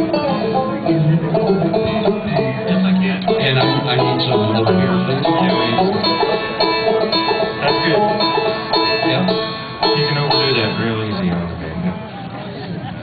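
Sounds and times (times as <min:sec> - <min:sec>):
low accompanying instruments: 0:00.0 - 0:12.9
banjo picking bluegrass rolls: 0:00.0 - 0:13.0.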